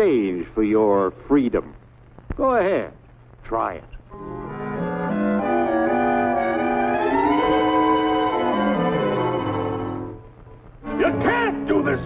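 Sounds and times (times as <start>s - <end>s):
brass-led orchestral music: 4.2s - 10.2s.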